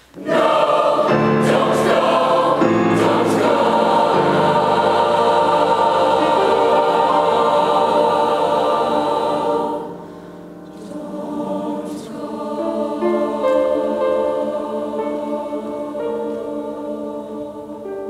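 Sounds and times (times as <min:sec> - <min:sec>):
choir singing sustained chord: 0:00.0 - 0:18.0.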